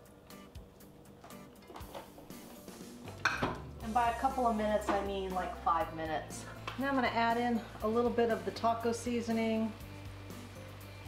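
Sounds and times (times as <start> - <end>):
quiet background music: 0.0 - 11.0.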